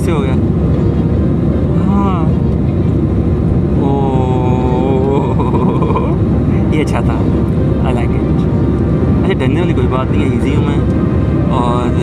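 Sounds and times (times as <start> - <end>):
jet engines rumbling in cabin: 0.0 - 12.0.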